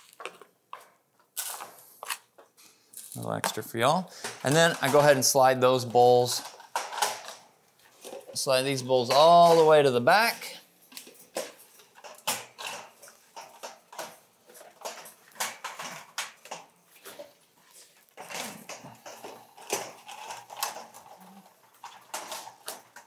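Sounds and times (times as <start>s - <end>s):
pigeons pecking at bowls: 10.4s - 23.0s.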